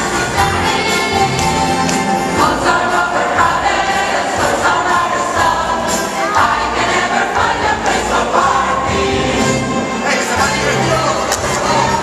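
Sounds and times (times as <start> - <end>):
choir singing with instruments: 0.0 - 12.0.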